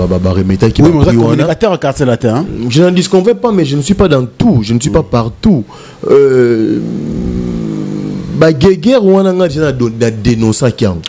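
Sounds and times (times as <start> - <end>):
man's drawn-out hesitation sound: 0.0 - 10.7.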